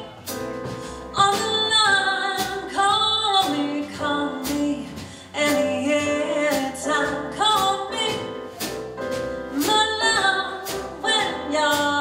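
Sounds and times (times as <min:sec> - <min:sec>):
double bass: 0:00.0 - 0:12.0
drums: 0:00.0 - 0:12.0
piano: 0:00.0 - 0:12.0
woman singing: 0:01.1 - 0:08.3, 0:09.6 - 0:12.0.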